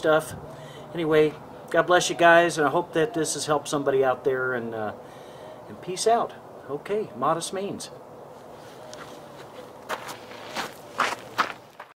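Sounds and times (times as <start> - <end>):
footsteps on dirt and gravel: 8.4 - 12.0.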